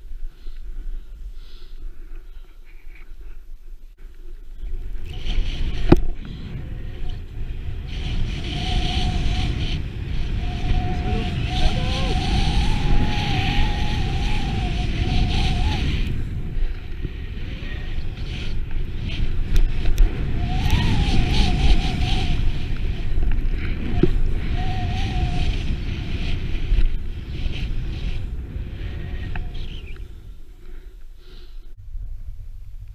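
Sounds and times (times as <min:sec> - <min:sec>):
wind rumbling on microphone: 0:00.0 - 0:32.9
snowboard hissing over snow: 0:05.4 - 0:30.3.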